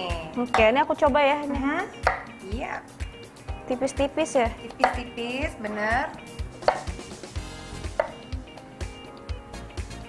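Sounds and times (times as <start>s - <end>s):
background music with steady beat: 0.0s - 10.0s
knife tapping cutting board: 4.8s - 5.1s, 6.6s - 7.0s, 8.0s - 8.2s.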